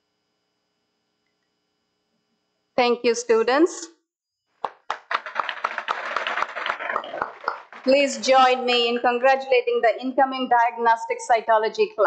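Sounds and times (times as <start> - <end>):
small group applauding: 4.6 - 8.6.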